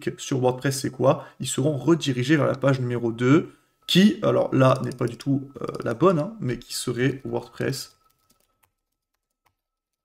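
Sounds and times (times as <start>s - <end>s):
keyboard typing: 4.6s - 6.1s, 7.1s - 10.0s.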